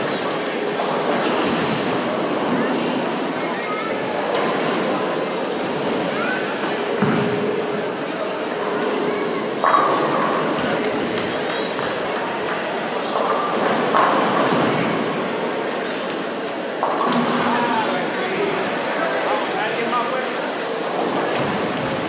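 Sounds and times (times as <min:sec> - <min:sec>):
hubbub of echoing voices: 0:00.0 - 0:22.0.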